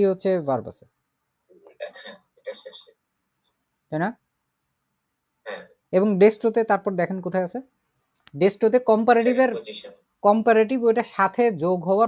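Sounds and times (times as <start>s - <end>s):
person talking: 1.7s - 2.9s, 5.5s - 12.0s.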